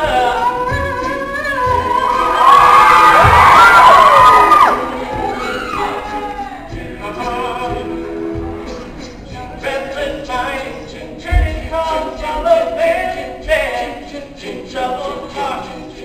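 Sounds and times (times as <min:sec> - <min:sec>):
male a cappella group singing: 0:00.0 - 0:03.2, 0:03.8 - 0:16.0
audience whooping and cheering: 0:01.6 - 0:06.7.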